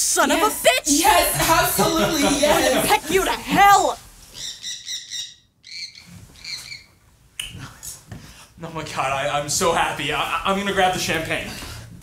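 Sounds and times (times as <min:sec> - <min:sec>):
parrot squawking: 0:01.8 - 0:06.9.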